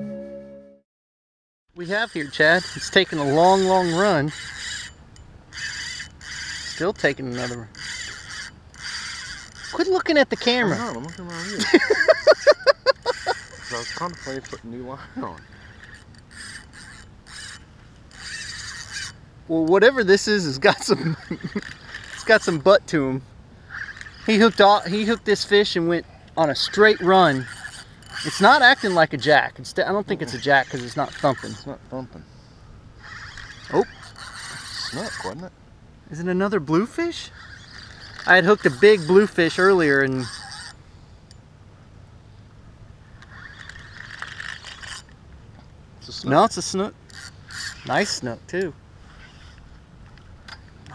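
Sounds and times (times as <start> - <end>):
fishing reel rasping: 1.8 - 31.8, 32.9 - 35.4, 36.9 - 41.4, 43.1 - 45.2, 46.1 - 50.9.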